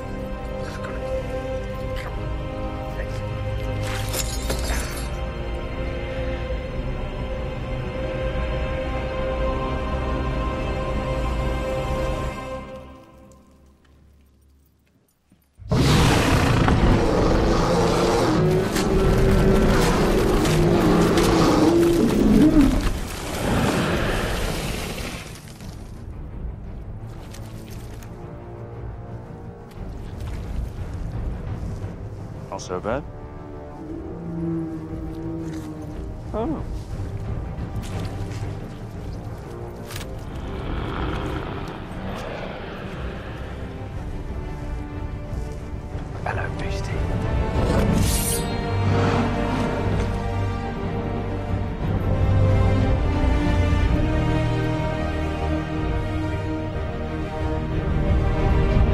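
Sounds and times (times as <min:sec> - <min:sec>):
film score music: 0:00.0 - 0:58.9
loud rough monster roar: 0:15.7 - 0:22.8
sea monster roar: 0:40.3 - 0:43.9.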